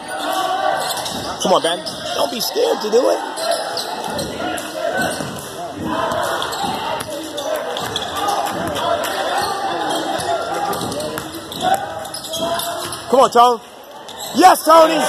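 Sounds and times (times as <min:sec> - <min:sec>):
murmur of voices: 0:00.0 - 0:15.0
basketball bouncing on hardwood: 0:06.1 - 0:07.2.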